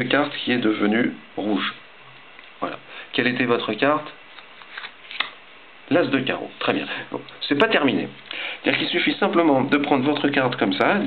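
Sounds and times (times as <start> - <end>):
playing cards rustling: 4.2 - 5.4.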